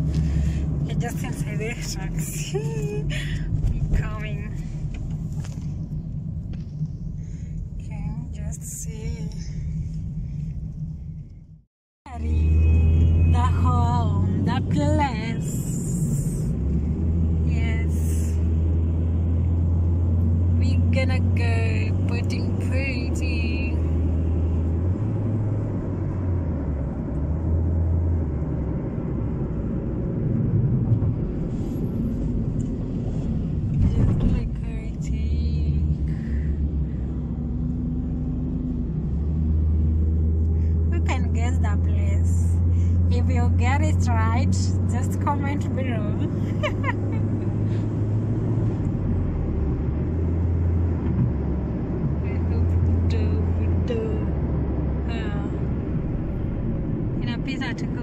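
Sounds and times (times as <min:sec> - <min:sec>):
car cabin road and engine rumble: 0:00.0 - 0:58.0.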